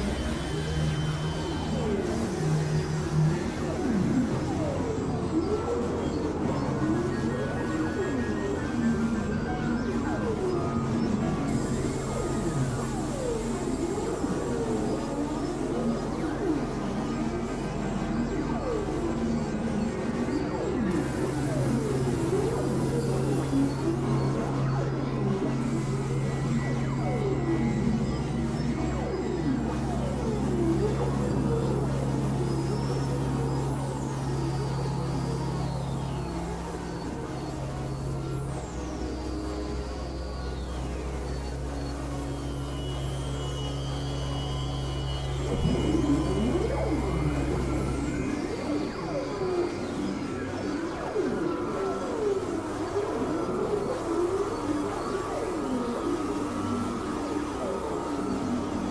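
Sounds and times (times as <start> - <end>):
low synthesizer drone: 0.0 - 58.9
sweeping synthesizer tones: 0.0 - 58.9.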